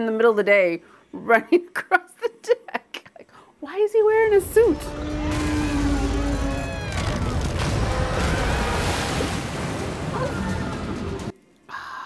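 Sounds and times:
seawater crashing through a wall: 5.0 - 11.3
dramatic score music: 9.3 - 11.3.

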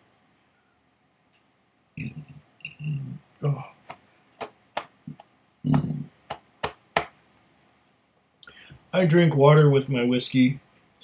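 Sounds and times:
man burping: 2.0 - 3.8
sharp clicks and taps: 3.8 - 7.2.

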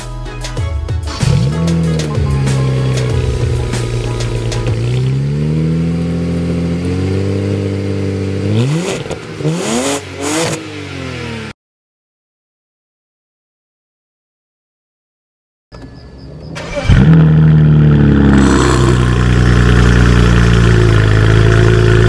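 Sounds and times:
car engine idling and revving: 1.2 - 11.6, 15.8 - 22.0.

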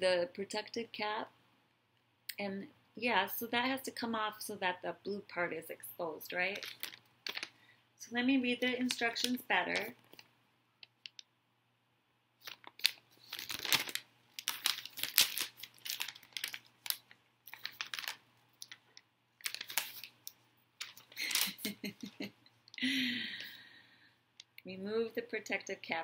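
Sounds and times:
paper rustling and crinkling: 6.5 - 7.6, 12.4 - 22.0.

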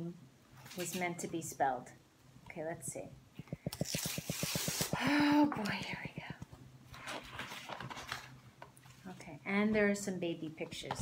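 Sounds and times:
tear strip ripping paper envelope: 3.8 - 5.0.

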